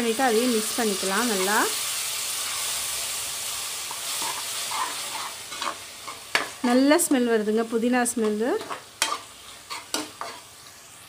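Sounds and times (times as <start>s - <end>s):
spices sizzling in hot oil: 0.0s - 11.0s
spoon scraping a pot: 3.9s - 6.5s, 8.2s - 10.5s.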